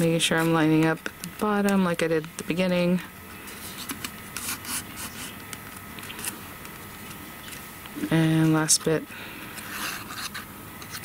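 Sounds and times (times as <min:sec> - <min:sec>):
paper rustling and rubbing: 0:03.4 - 0:05.4, 0:06.0 - 0:06.5
paper scrapes: 0:03.5 - 0:05.4, 0:09.6 - 0:11.0.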